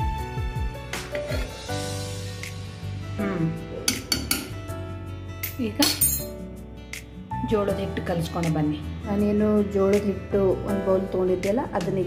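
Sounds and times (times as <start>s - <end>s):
background music with voice: 0.0s - 12.0s
metal spoon scraping pot: 1.0s - 1.7s.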